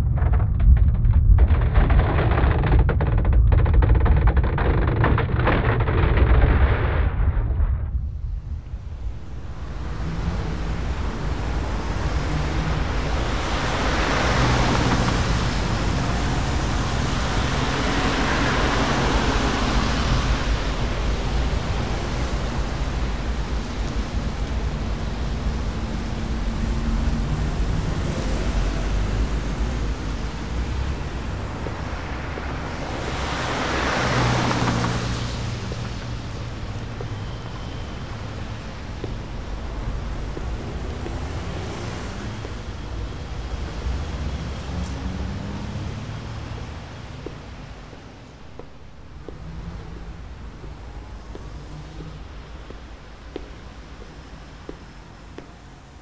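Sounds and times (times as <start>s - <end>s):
rushing rumbling noise: 0.0s - 56.0s.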